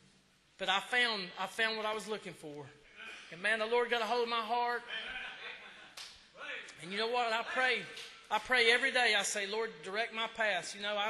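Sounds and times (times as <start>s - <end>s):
man speaking amplified: 0.6s - 5.3s, 6.4s - 11.0s.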